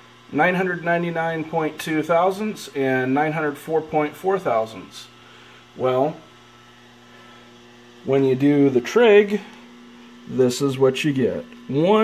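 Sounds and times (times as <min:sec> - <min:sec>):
faint steady room hum: 0:00.0 - 0:12.0
person speaking: 0:08.0 - 0:12.0.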